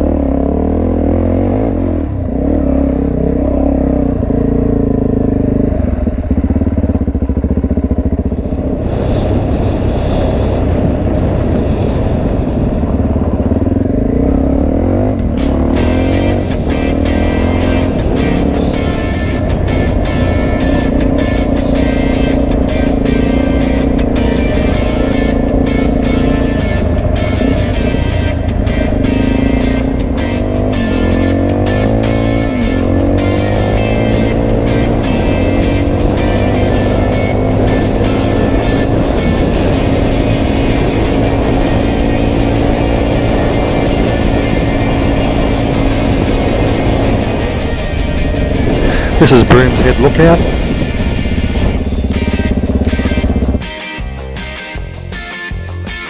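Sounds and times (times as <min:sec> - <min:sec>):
motorcycle engine running: 0:00.0 - 0:56.0
music playing: 0:13.9 - 0:56.0.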